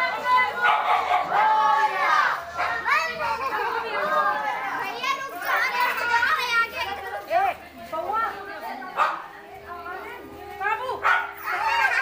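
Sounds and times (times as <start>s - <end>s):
adults talking: 0.0s - 12.0s
children calling and shouting: 0.0s - 12.0s.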